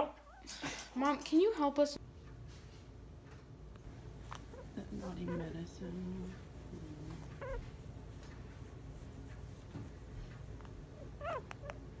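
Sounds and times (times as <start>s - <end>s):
guinea pig squeaking: 4.2s - 12.0s.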